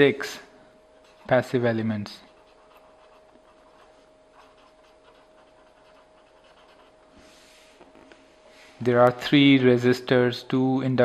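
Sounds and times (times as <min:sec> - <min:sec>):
pen scratching on paper: 0:02.3 - 0:07.0.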